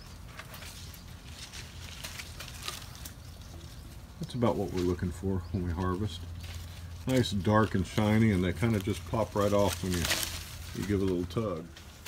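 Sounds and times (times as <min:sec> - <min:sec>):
grape leaves rustling: 0:00.0 - 0:12.0.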